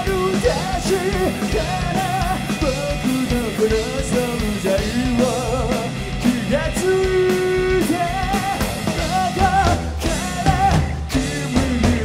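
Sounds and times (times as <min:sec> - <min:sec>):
drum kit: 0:00.0 - 0:12.0
electric guitars: 0:00.0 - 0:12.0
male singer with vibrato: 0:00.0 - 0:12.0.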